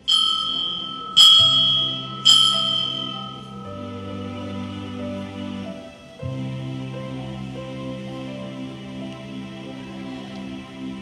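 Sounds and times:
bell ringing: 0.0s - 6.1s.

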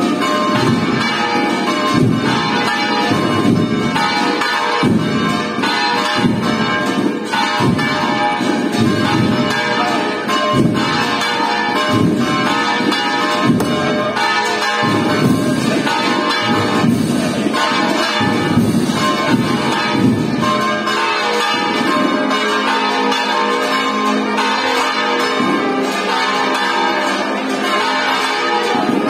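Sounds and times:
church bells pealing: 0.0s - 29.0s.

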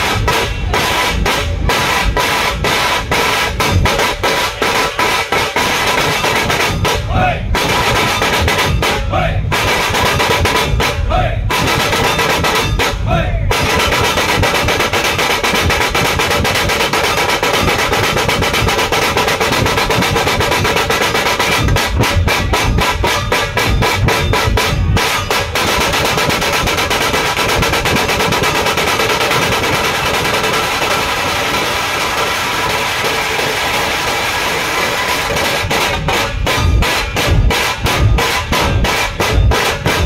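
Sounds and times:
barrel drums beaten with sticks: 0.0s - 40.0s
fast snare drum roll: 0.0s - 40.0s.

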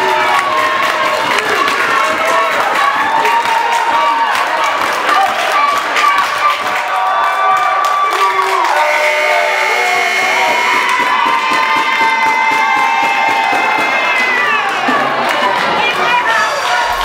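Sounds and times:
crowd cheering and shouting: 0.0s - 17.0s
long high pitched buzzer: 8.7s - 11.0s.

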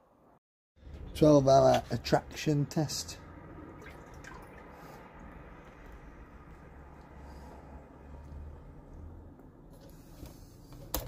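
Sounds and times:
water dripping in glass tank: 3.7s - 5.5s.

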